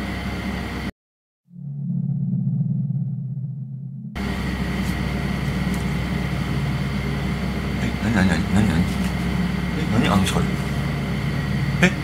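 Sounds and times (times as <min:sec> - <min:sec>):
low steady drone: 0:01.5 - 0:12.0
room hiss and hum: 0:04.2 - 0:12.0.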